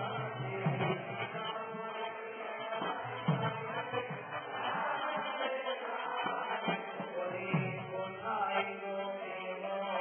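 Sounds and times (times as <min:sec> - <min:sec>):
voices chanting long notes: 0:00.0 - 0:10.0.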